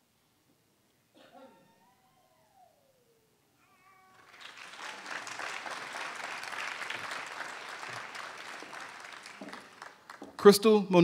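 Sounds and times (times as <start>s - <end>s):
audience applauding: 4.1s - 10.7s.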